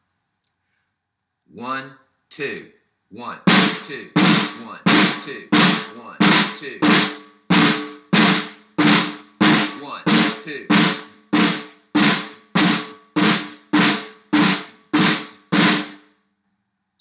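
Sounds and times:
snare drum buzz rolls: 3.4s - 16.0s.

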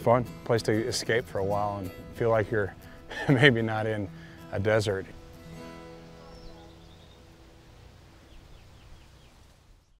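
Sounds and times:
bird calls: 5.1s - 10.0s.

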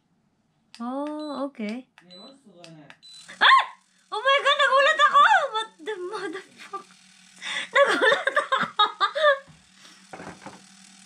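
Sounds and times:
low vibration buzz: 3.0s - 11.0s
woman laughing: 3.3s - 6.8s, 7.4s - 9.5s.

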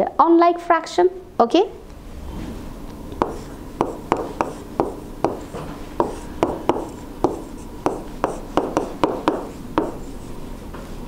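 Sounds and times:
stylus tapping touchscreen: 3.2s - 10.1s.

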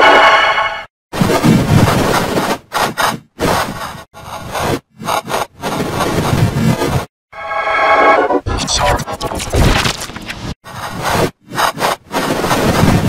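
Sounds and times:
harsh distorted blare: 7.4s - 10.6s.

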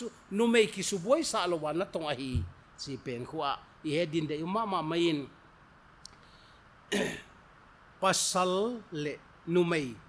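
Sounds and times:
man clearing his throat: 6.9s - 7.4s.

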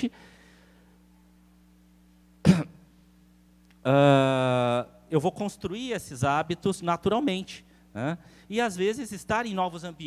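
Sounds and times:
sound system hum: 0.0s - 10.0s
man clearing throat: 2.4s - 2.9s.

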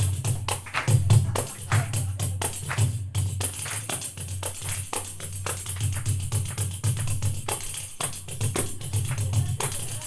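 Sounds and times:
tambourine struck with palm: 0.0s - 10.0s.

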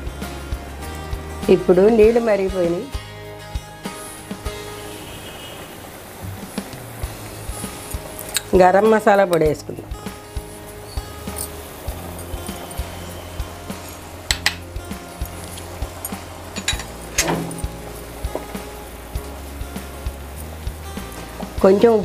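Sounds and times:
background music sustained notes: 0.0s - 22.0s
water boiling in a pan: 0.0s - 22.0s.

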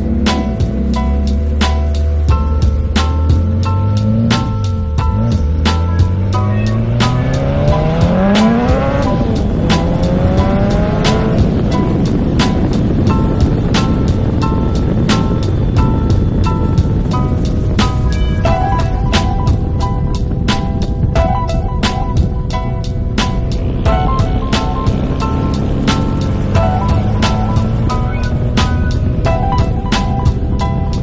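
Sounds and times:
car engine accelerating: 0.0s - 31.0s
music with steady beat: 0.0s - 31.0s.

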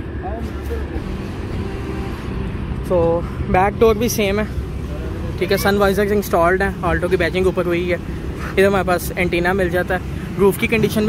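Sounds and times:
traffic rumble: 0.0s - 11.0s.

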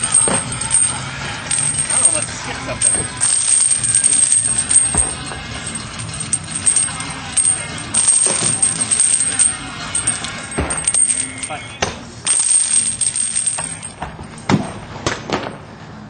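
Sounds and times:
chain knocks: 0.0s - 14.7s
steel chains clinking and rattling: 0.0s - 14.7s
background music: 0.0s - 15.1s.

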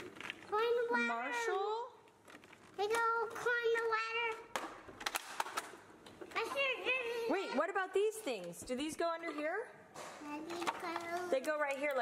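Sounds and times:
child's high-pitched voice: 0.5s - 1.8s, 2.8s - 4.5s, 6.3s - 7.6s, 10.2s - 11.4s
plastic toy parts clicking: 10.5s - 12.0s.

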